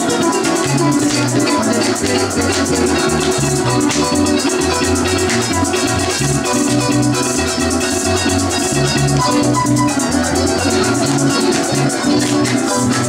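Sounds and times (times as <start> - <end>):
harp plucking melody: 0.0 - 13.0
maracas rattling: 0.0 - 13.0.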